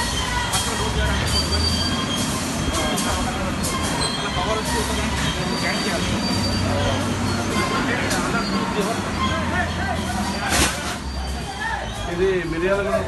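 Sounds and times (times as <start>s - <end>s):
freight wagon rumble: 0.0s - 13.0s
high squealing tones: 0.0s - 13.0s.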